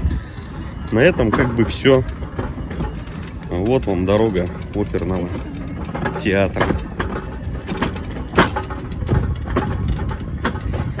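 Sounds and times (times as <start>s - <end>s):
electric wheelchair motors rumbling: 0.0s - 11.0s
wheels knocking over bumps: 0.0s - 11.0s.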